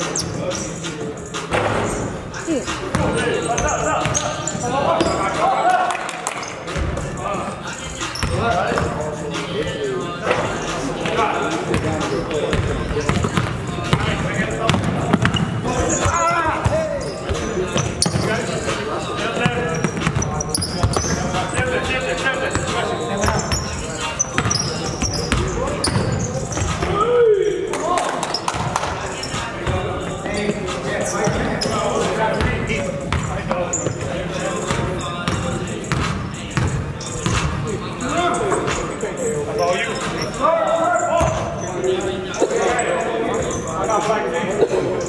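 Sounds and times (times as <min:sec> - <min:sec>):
players calling out: 0:02.3 - 0:43.8.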